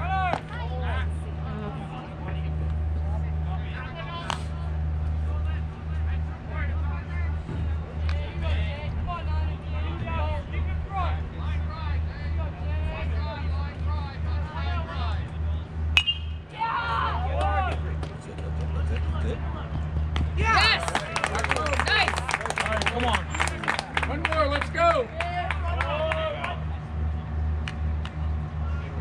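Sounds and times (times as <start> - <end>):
steady low hum: 0.0 - 29.0
metal bat hitting ball: 16.0 - 16.4.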